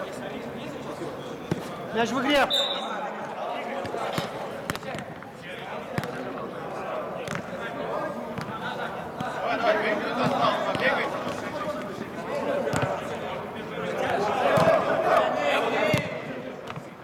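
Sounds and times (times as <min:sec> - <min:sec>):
players calling: 0:00.7 - 0:16.4.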